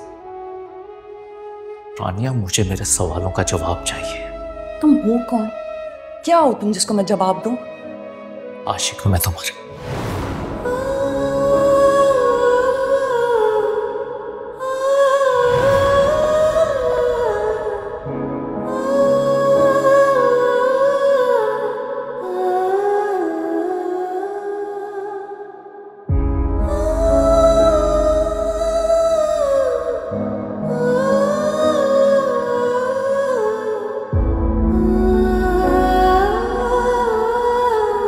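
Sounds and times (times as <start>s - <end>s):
slow hummed vocal melody: 10.7s - 25.5s, 26.5s - 38.0s.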